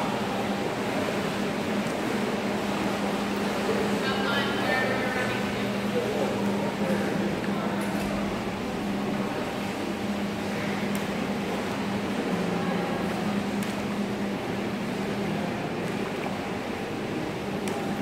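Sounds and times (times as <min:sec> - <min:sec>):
ventilation machinery hum: 0:00.0 - 0:18.0.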